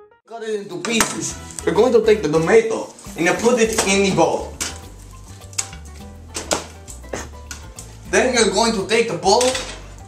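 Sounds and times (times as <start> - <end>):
background music with bass: 0.0 - 10.0.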